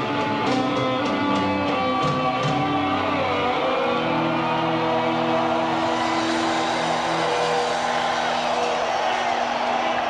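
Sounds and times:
distorted electric guitars and bass chord: 0:00.0 - 0:09.0
arena crowd noise: 0:00.0 - 0:10.0.

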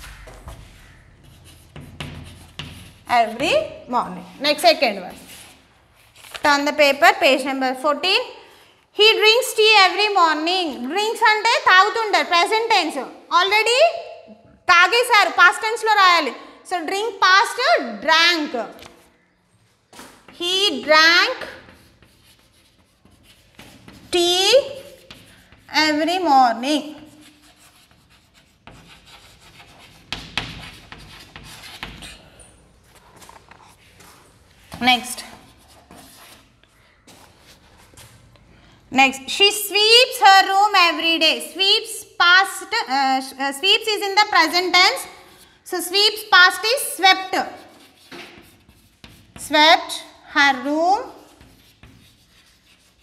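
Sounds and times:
chalk scraping on chalkboard: 0:00.1 - 0:03.5, 0:21.4 - 0:26.2, 0:26.8 - 0:32.2, 0:35.1 - 0:38.3, 0:46.9 - 0:53.0.

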